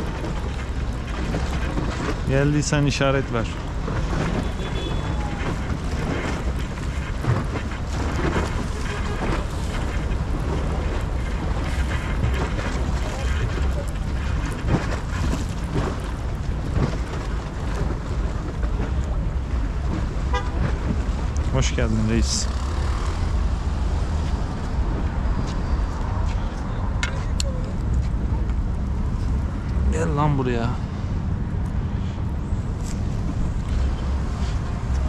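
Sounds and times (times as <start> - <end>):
low rumble of boat and water: 0.0 - 35.0
wind buffeting microphone: 0.0 - 35.0.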